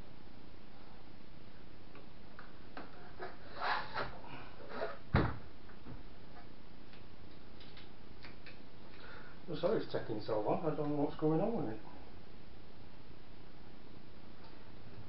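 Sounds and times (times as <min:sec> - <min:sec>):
steady background hiss: 0:00.0 - 0:15.0.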